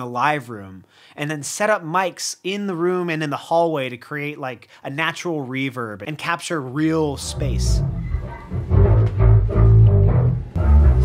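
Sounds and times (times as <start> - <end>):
guitar playback through speakers: 7.1 - 11.0.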